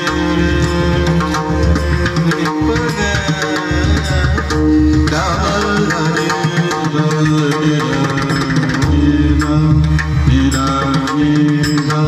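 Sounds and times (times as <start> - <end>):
harmonium chords: 0.0 - 12.0
person singing devotional song: 0.0 - 12.0.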